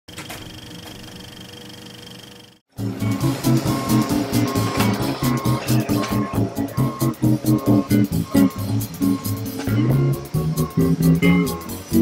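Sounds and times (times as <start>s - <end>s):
high steady tone: 2.8s - 12.0s.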